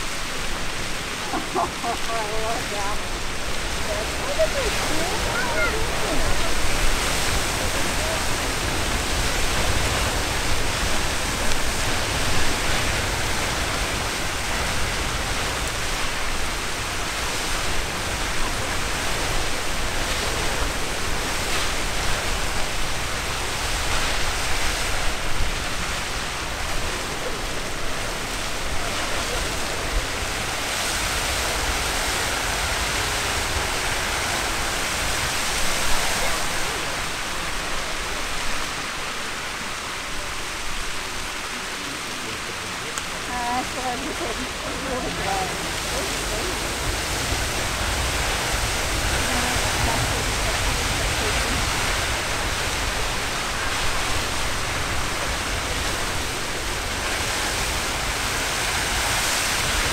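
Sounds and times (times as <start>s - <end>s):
geyser gushing water and steam: 0.0s - 59.9s.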